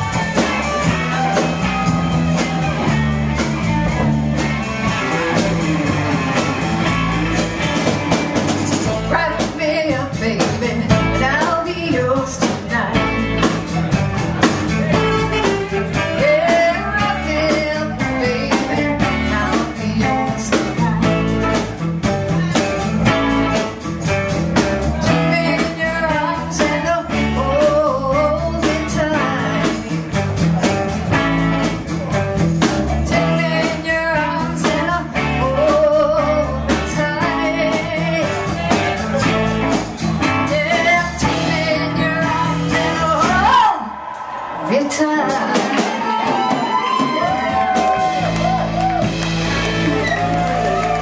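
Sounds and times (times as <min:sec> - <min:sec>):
blues-rock band playing: 0:00.0 - 0:51.0
woman singing: 0:08.7 - 0:13.5, 0:15.9 - 0:21.6, 0:24.9 - 0:30.5, 0:32.9 - 0:39.7, 0:40.3 - 0:44.0, 0:44.7 - 0:46.4.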